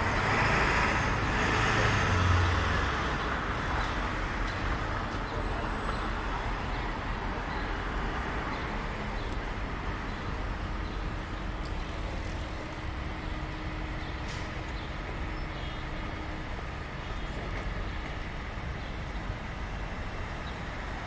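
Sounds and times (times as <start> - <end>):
car and truck traffic: 0.0 - 21.0.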